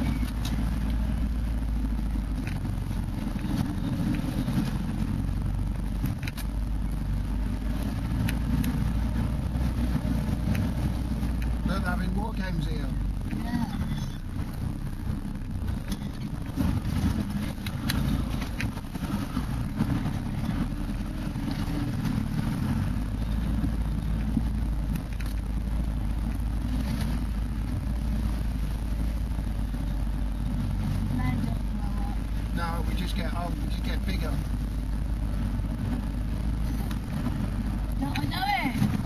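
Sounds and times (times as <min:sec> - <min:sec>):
engine low rumble: 0:00.0 - 0:39.0.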